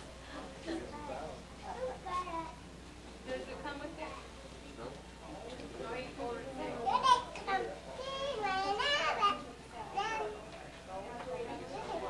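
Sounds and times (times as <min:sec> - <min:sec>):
young child's high voice: 0:01.6 - 0:02.6, 0:08.0 - 0:09.4.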